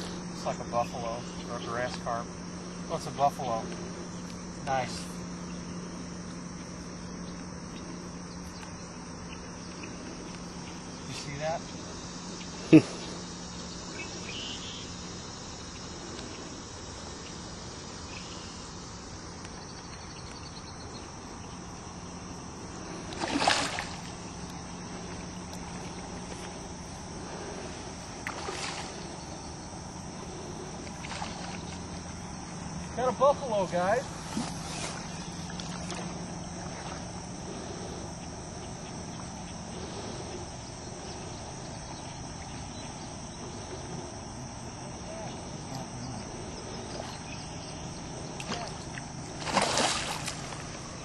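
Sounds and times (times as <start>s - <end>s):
insects chirring: 0.0s - 51.0s
low steady hum: 0.0s - 51.0s.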